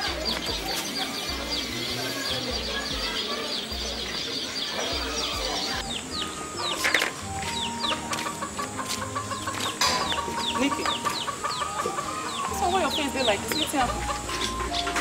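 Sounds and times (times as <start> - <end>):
background music with held notes: 0.0 - 15.0
chickens clucking: 0.0 - 15.0
small birds chirping: 0.0 - 15.0.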